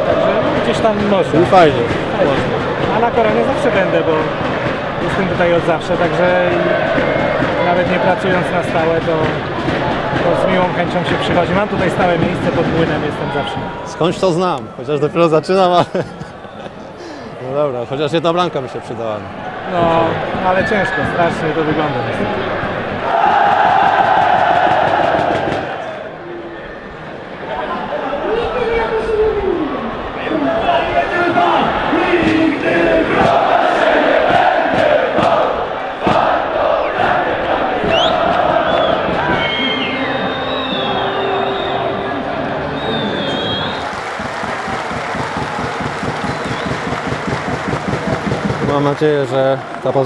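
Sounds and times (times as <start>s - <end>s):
crowd chanting: 0.0s - 14.0s, 19.2s - 28.1s, 29.7s - 48.8s.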